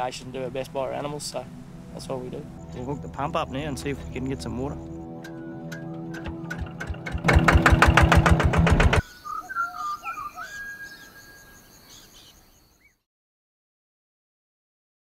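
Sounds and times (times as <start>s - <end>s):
soft music: 0.0s - 9.0s
pump engine running: 6.1s - 9.0s.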